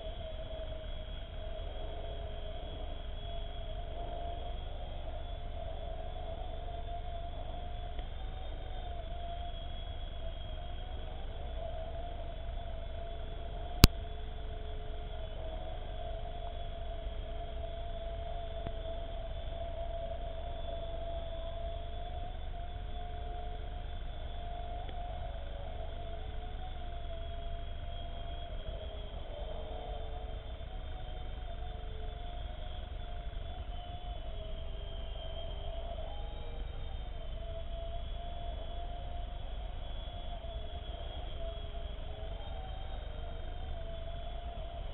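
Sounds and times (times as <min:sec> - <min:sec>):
toy helicopter rotor whine: 0:00.0 - 0:44.9.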